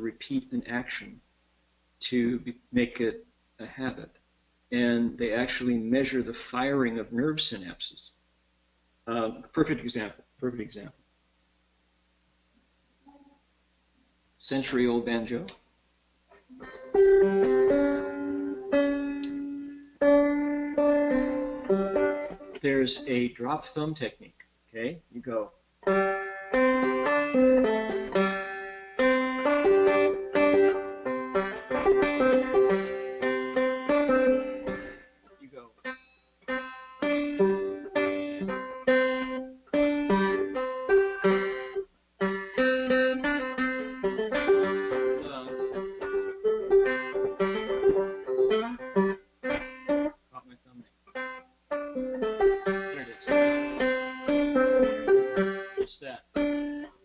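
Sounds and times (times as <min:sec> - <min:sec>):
man talking: 0:00.0 - 0:01.2, 0:02.0 - 0:08.2, 0:09.0 - 0:11.0, 0:14.4 - 0:15.6, 0:22.6 - 0:25.6, 0:35.3 - 0:35.8, 0:45.0 - 0:45.9, 0:50.3 - 0:50.9, 0:52.4 - 0:53.8, 0:55.8 - 0:56.4
banjo plucked notes: 0:16.3 - 0:23.3, 0:25.8 - 0:50.2, 0:51.1 - 0:57.0.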